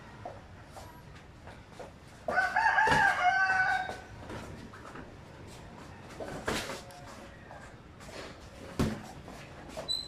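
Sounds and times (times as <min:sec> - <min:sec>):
rooster crowing: 0:02.3 - 0:04.1.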